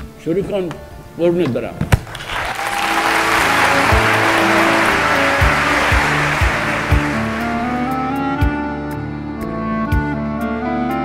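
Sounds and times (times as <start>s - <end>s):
audience applauding: 2.1s - 8.2s
sustained orchestral music: 2.7s - 8.6s.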